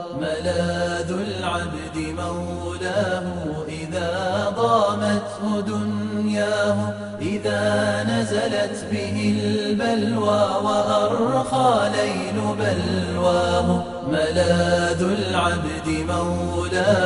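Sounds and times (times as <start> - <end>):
person chanting: 0.0 - 17.0.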